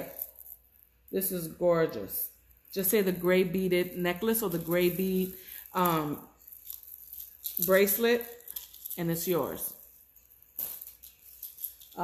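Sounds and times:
beaded jewelry rattling: 0.0 - 12.0.

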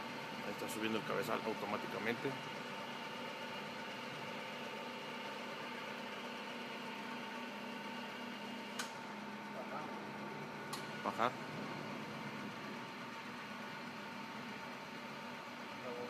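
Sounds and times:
milling machine hum and whine: 0.0 - 16.0.

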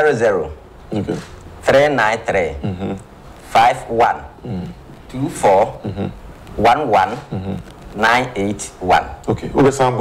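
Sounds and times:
man speaking syllables: 0.0 - 10.0.

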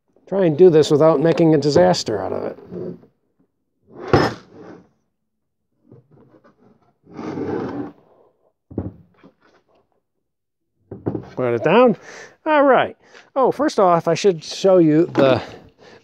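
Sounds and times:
cover scraping and rubbing: 1.8 - 3.1, 3.9 - 5.0, 5.9 - 8.2
knock on cover: 8.7 - 9.1.

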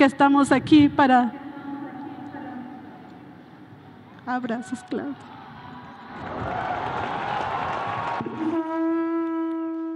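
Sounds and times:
held horn-like tone: 8.4 - 9.9.

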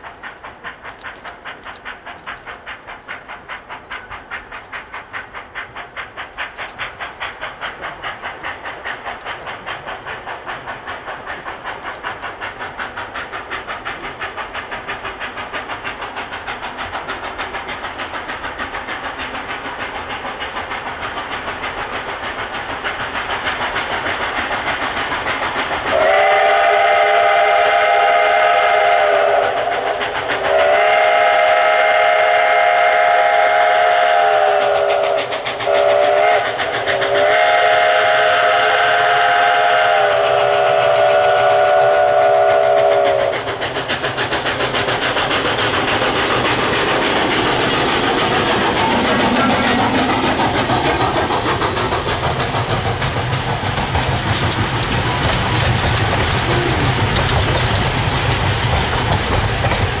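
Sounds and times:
wheels clicking over rail joints: 0.0 - 26.3, 34.4 - 60.0
train rumble: 0.0 - 60.0
steam whistle blasts: 25.9 - 29.8, 30.5 - 43.5.

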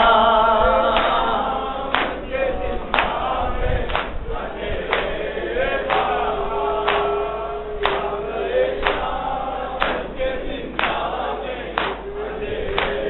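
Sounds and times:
men chanting in unison: 0.0 - 13.0.

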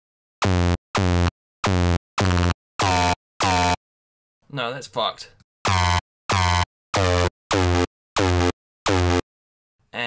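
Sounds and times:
synth bass notes: 0.4 - 3.8, 5.6 - 9.2.

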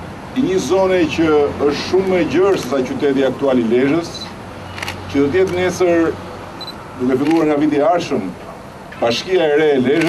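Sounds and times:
man speaking into a microphone: 0.4 - 4.4, 5.1 - 6.2, 7.0 - 8.4, 9.0 - 10.0.

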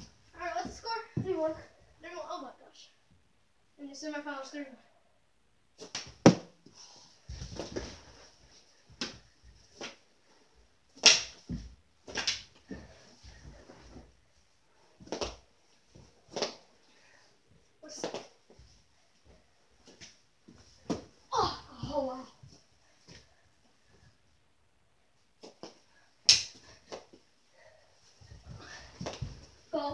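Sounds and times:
child's vocal sound: 21.3 - 22.2.

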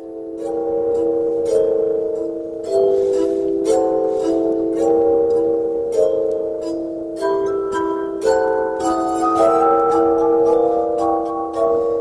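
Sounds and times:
glass harp ringing notes: 0.0 - 12.0.

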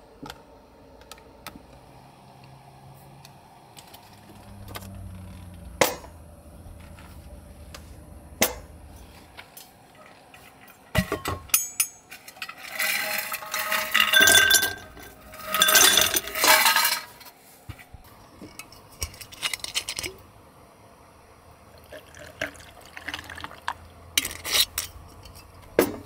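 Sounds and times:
ice cubes clinking against glass: 11.6 - 17.2.

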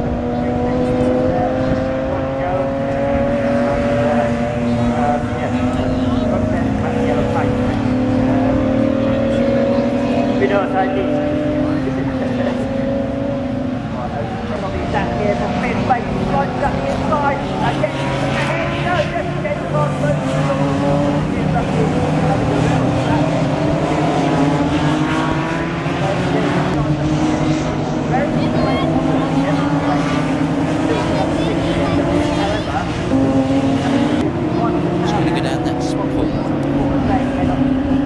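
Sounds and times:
race car engines: 0.0 - 38.0.

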